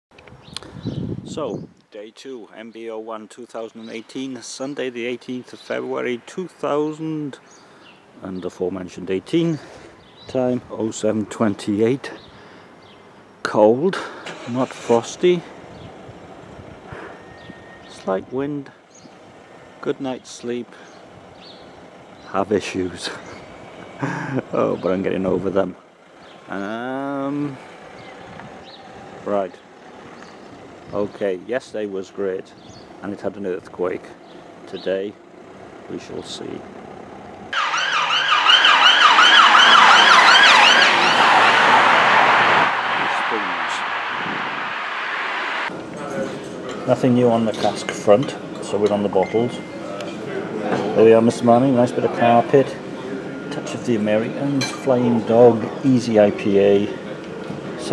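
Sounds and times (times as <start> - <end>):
distant traffic: 1.9 - 57.9
rushing street noise: 3.7 - 33.6, 34.2 - 57.9.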